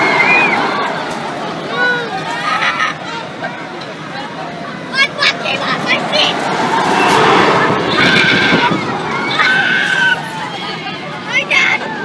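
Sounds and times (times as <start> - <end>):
wind on microphone: 6.6 - 9.4
riders screaming: 7.8 - 10.4.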